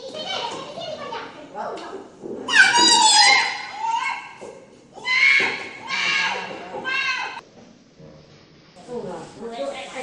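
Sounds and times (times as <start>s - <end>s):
high-pitched voices shouting: 2.5s - 4.4s, 5.0s - 7.4s.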